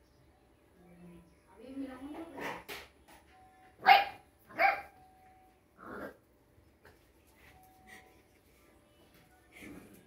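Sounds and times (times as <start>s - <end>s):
dog barking: 3.8s - 5.0s.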